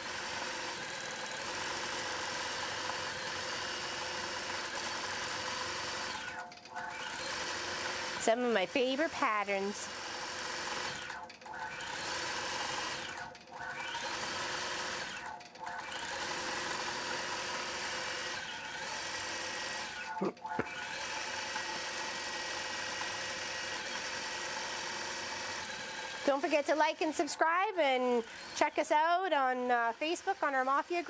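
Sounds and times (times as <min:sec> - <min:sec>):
quilting machine stitching: 0:00.0 - 0:31.0.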